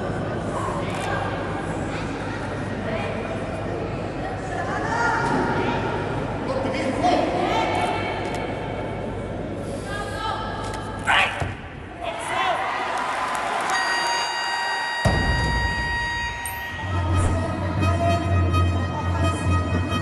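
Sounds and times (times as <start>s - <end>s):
music: 15.1s - 20.0s.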